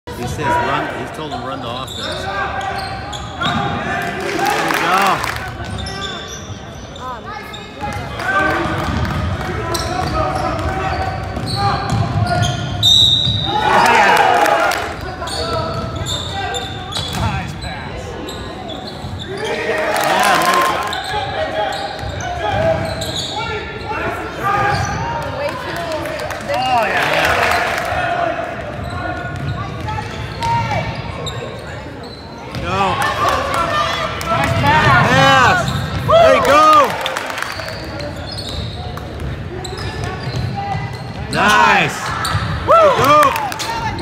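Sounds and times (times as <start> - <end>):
people shouting: 41.4 - 43.9.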